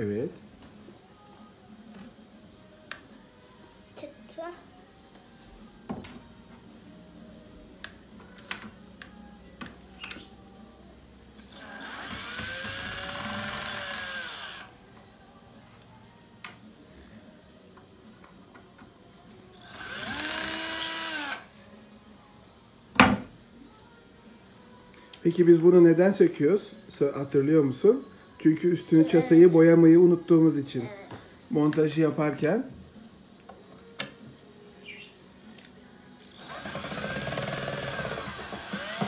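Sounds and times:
cordless drill whining: 0:11.4 - 0:14.7, 0:19.6 - 0:21.4, 0:36.2 - 0:39.0.

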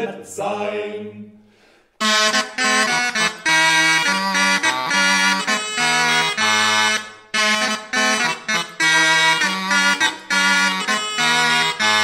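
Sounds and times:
double-reed wind instruments playing: 0:02.0 - 0:12.0.

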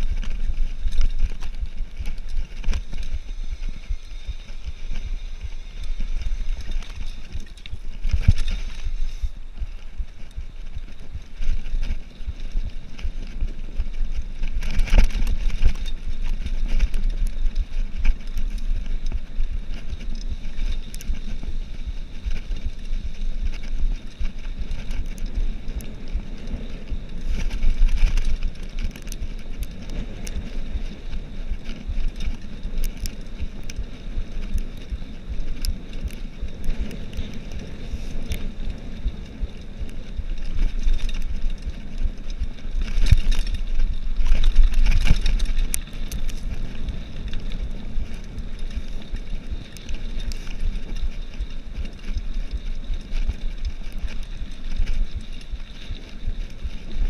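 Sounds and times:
bike clicks and rattles: 0:00.0 - 0:57.0
bike tyres rumbling on dirt: 0:00.0 - 0:57.0
wind on microphone: 0:00.0 - 0:57.0.

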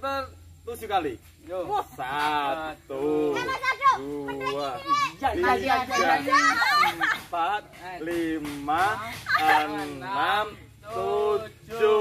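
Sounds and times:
people calling out: 0:01.7 - 0:12.0
people laughing: 0:05.4 - 0:07.7, 0:09.0 - 0:10.2.

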